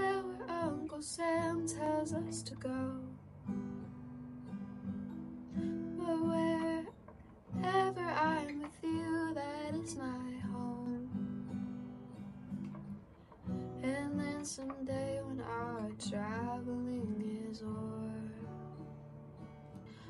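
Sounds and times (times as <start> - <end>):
strummed acoustic guitar: 0.0 - 20.0.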